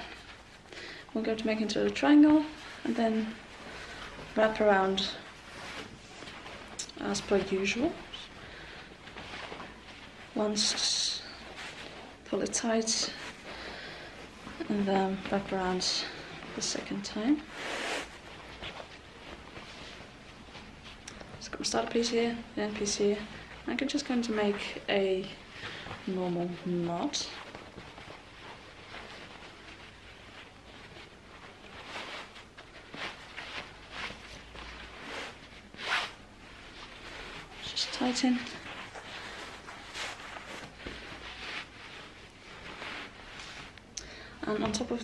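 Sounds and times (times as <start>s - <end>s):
fabric rustling: 0.0s - 45.0s
soft fabric brush: 0.0s - 45.0s.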